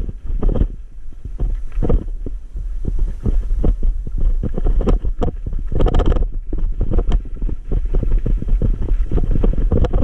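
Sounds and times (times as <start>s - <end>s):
bike knocks and rattles: 0.0s - 10.0s.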